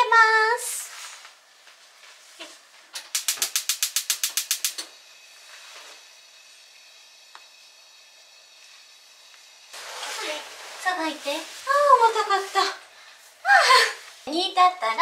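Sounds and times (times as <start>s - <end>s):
gas igniter clicking rapidly: 3.0s - 4.9s.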